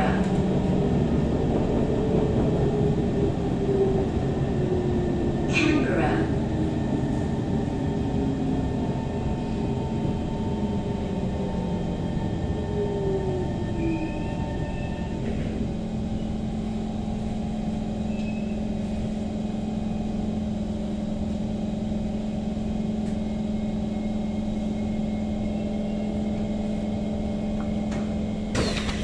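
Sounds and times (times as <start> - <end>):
standing train humming: 0.0 - 29.0
train doors opening: 27.5 - 29.0.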